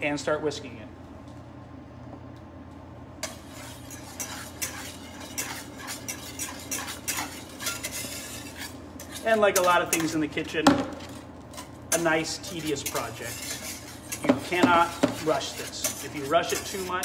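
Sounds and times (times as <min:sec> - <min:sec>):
low steady hum: 0:00.0 - 0:17.0
wire whisk scraping metal pan: 0:03.2 - 0:17.0.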